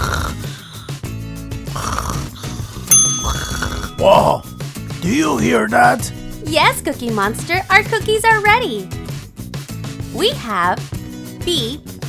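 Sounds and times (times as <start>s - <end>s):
cartoon snoring: 0.0s - 0.9s, 1.6s - 4.4s
light background music: 0.0s - 12.0s
bell-like timer ding: 2.9s - 4.5s.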